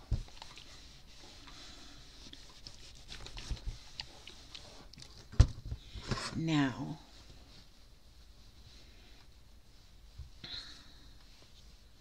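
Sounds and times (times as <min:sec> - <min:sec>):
fabric rustling: 0:00.0 - 0:12.0.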